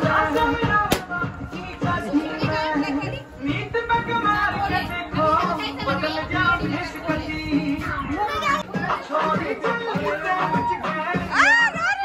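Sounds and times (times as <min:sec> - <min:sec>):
loud dance music: 0:00.0 - 0:12.0
excited voices: 0:08.1 - 0:12.0.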